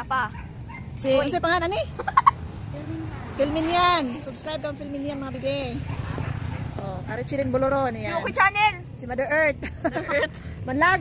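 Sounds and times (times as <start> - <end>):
women talking and calling out: 0.0 - 11.0.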